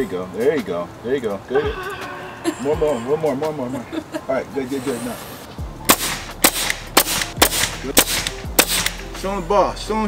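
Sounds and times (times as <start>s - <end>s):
nail gun firing: 5.9s - 9.0s.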